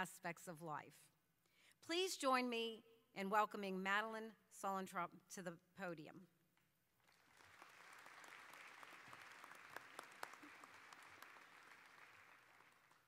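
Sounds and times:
audience applauding: 7.0s - 13.0s.

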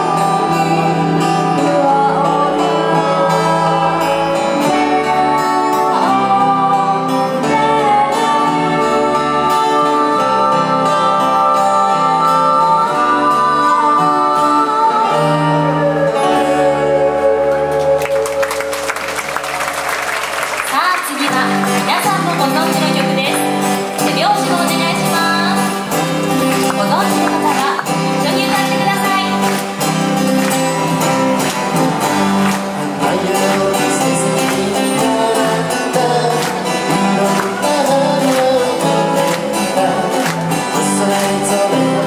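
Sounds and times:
women singing into microphones: 0.0s - 17.7s
live band with guitar: 0.0s - 42.0s
audience applause: 17.5s - 24.5s, 26.0s - 41.9s.

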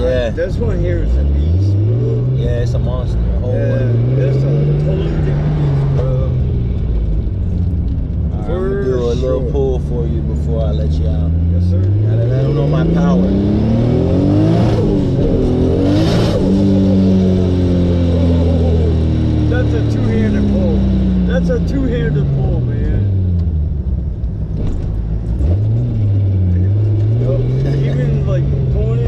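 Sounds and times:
car engine revving: 0.0s - 29.0s.

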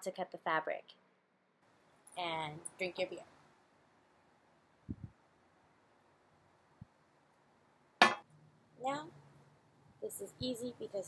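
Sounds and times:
glass clinking on table: 8.0s - 8.2s.

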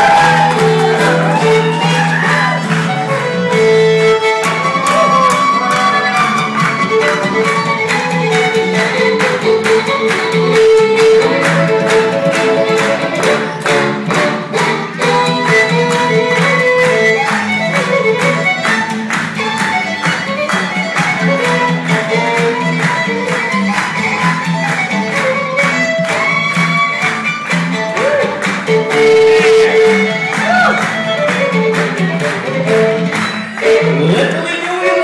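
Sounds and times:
bluegrass fiddle playing: 0.0s - 35.0s
upright bass: 0.0s - 35.0s.

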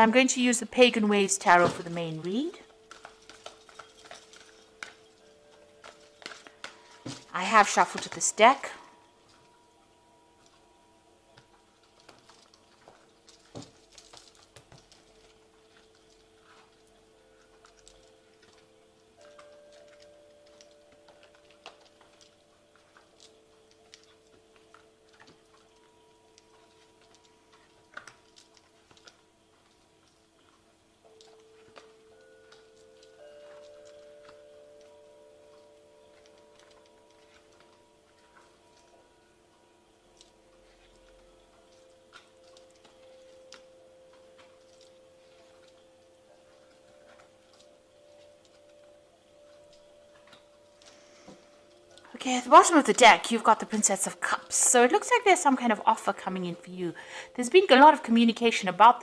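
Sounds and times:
soft music of held notes: 0.0s - 59.0s.

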